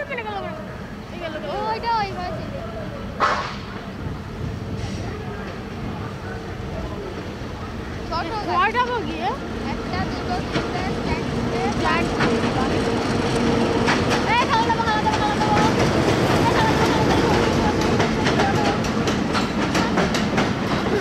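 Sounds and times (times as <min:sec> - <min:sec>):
diesel locomotive engine hum: 0:00.0 - 0:21.0
train wheels clacking: 0:08.1 - 0:21.0.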